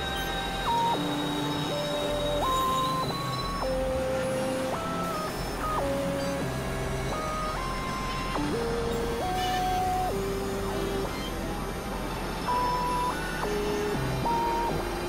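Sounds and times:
steady high whine: 0:00.0 - 0:15.0.

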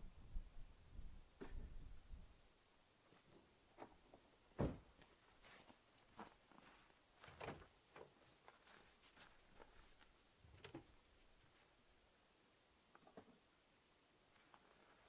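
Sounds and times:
footsteps in snow: 0:05.4 - 0:07.3, 0:08.2 - 0:10.1.

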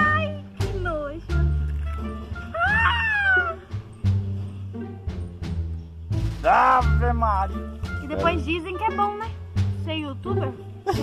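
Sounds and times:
background music: 0:00.0 - 0:11.0
cat meow: 0:02.5 - 0:03.7.

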